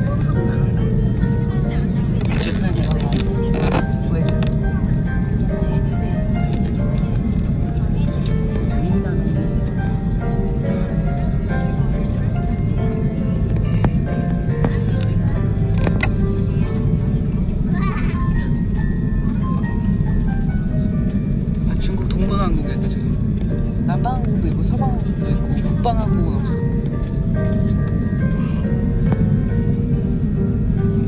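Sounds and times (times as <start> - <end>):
airliner cabin rumble: 0.0 - 31.0
music playing: 0.0 - 31.0.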